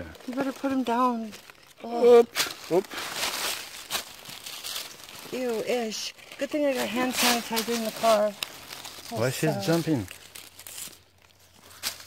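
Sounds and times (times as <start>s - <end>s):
dry leaves rustling and crunching: 0.0s - 12.0s.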